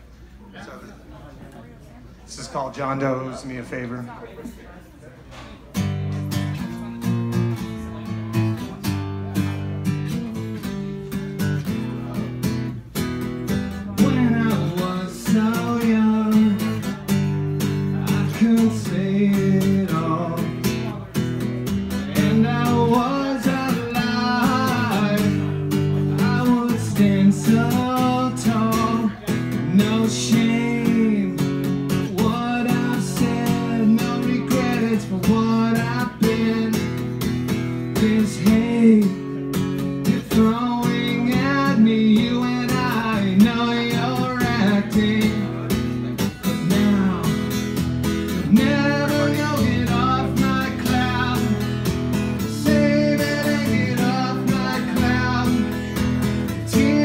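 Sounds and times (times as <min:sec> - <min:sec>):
strummed acoustic guitar: 0:05.3 - 0:57.0
man singing: 0:13.7 - 0:57.0.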